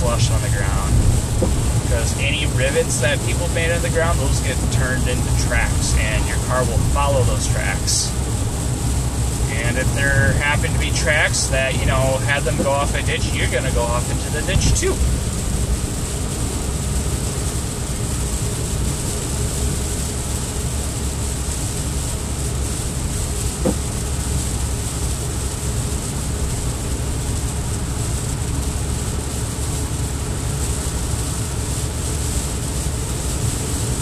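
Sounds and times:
car road noise on wet road: 0:00.0 - 0:34.0.

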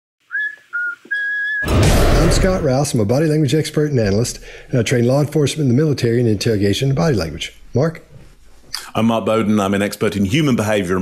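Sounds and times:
short whistled notes: 0:00.3 - 0:01.7
loud whoosh with deep bass: 0:01.6 - 0:02.8.

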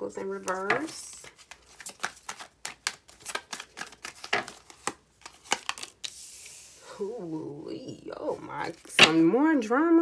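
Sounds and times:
cards being shuffled: 0:00.2 - 0:06.8.

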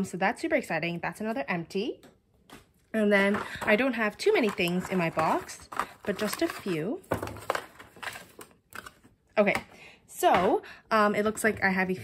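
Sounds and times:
paper rustling: 0:03.2 - 0:09.1.

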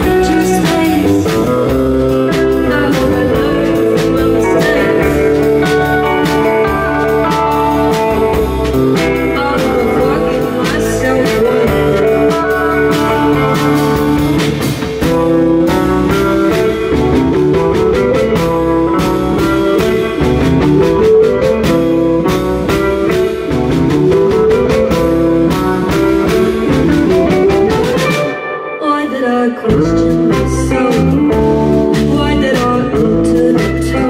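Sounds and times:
drum kit beat: 0:00.0 - 0:28.8, 0:29.7 - 0:34.0
electric guitar: 0:00.0 - 0:34.0.

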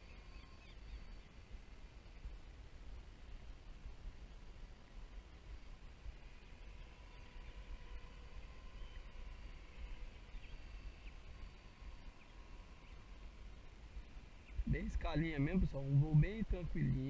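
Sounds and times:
bird chirps: 0:00.0 - 0:01.4
wind rumble on microphone: 0:00.0 - 0:17.0
model helicopter whine: 0:05.7 - 0:14.4.

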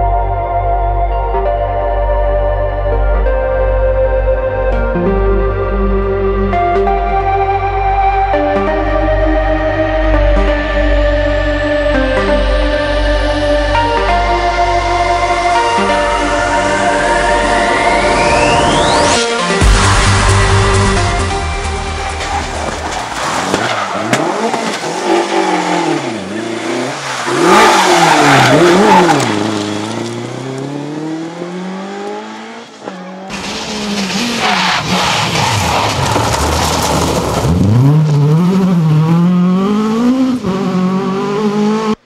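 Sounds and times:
rally car engines revving: 0:15.2 - 0:42.0.

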